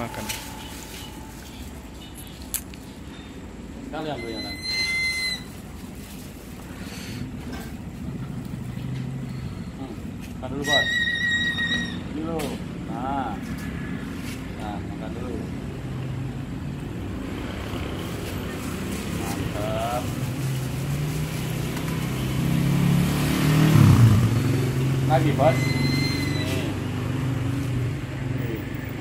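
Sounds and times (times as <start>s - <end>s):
steady high tone: 0.0s - 1.8s
vehicle engine passing by: 5.6s - 11.0s, 11.9s - 29.0s.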